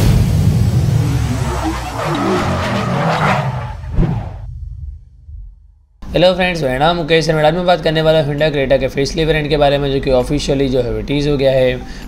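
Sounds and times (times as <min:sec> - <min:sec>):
deep low rumble: 0:00.0 - 0:06.0
car tyre screeching: 0:00.8 - 0:04.5.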